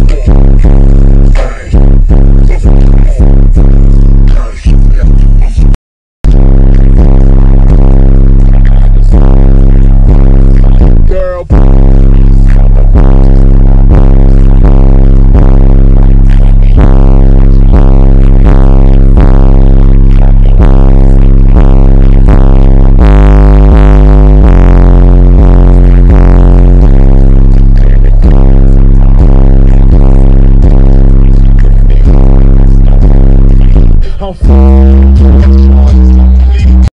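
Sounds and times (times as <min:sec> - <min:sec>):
loud bass-heavy music through subwoofers: 0:00.0 - 0:36.9.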